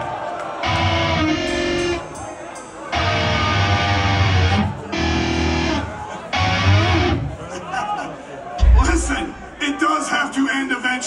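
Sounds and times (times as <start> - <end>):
distorted electric guitars and bass: 0.6 - 2.0, 3.0 - 7.4.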